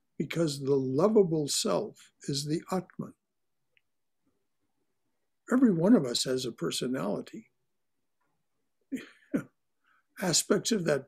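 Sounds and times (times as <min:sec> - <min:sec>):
man speaking: 0:00.2 - 0:03.2, 0:05.5 - 0:07.5, 0:10.2 - 0:11.0.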